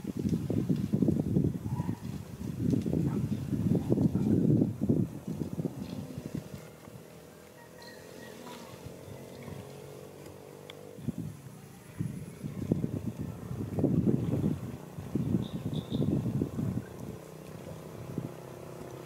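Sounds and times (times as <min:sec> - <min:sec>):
wind buffeting microphone: 0:00.0 - 0:19.0
vehicle engine humming: 0:03.8 - 0:19.0.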